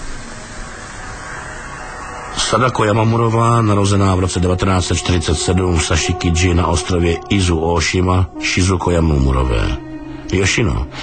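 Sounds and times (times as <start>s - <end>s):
steady hiss-like noise: 0.0s - 11.0s.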